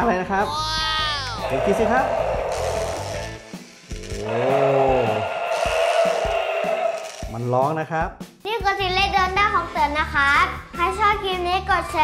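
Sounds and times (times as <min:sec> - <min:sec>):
background music: 0:00.0 - 0:12.0
toy dinosaur roar: 0:01.2 - 0:07.3.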